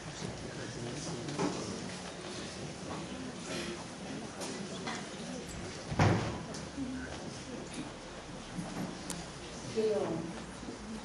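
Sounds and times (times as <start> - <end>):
faint murmur in a hall: 0.0 - 11.0.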